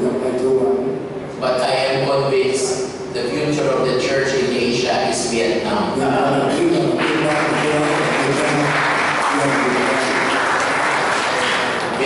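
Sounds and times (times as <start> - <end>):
faint man's voice: 0.0 - 12.0
audience applauding: 7.0 - 12.0.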